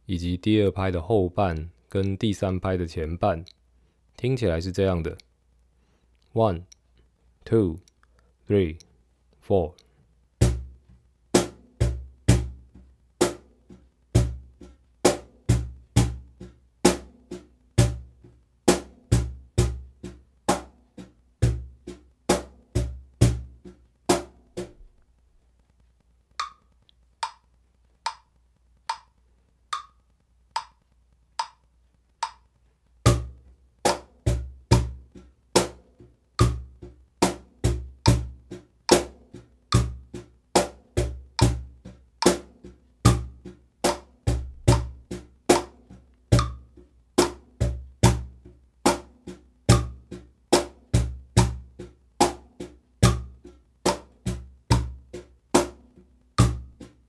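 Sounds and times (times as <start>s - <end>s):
metronome ticking: 26.3s - 57.0s
cajon groove: 29.8s - 57.0s.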